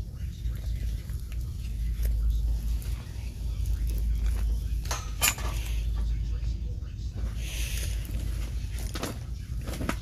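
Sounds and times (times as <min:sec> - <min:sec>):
low rumble of handling: 0:00.0 - 0:10.0.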